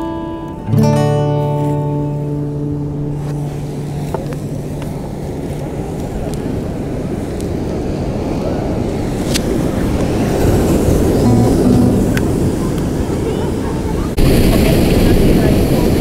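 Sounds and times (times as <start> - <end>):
acoustic guitar chord ringing: 0.0 - 4.1, 11.2 - 12.7
surf: 0.0 - 16.0.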